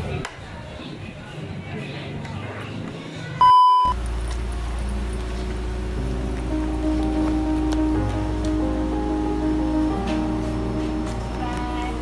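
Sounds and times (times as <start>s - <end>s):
electronic censor beep: 3.4s - 4.0s
background music: 4.0s - 12.0s.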